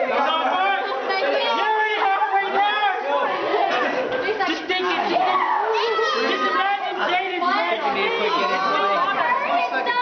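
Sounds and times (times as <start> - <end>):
young people chattering excitedly: 0.0 - 10.0.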